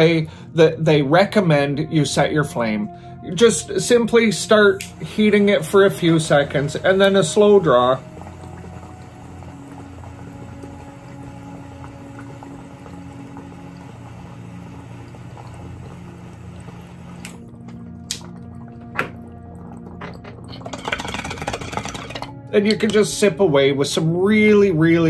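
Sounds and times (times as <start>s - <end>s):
soft background music: 0.0s - 25.0s
torch flame hissing: 4.4s - 17.4s
water bubbling in a bong: 4.5s - 23.1s.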